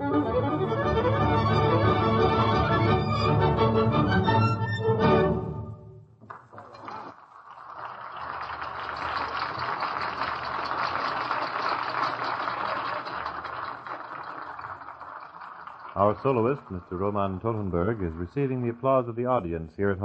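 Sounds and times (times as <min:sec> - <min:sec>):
large audience applauding: 0:06.3 - 0:19.1.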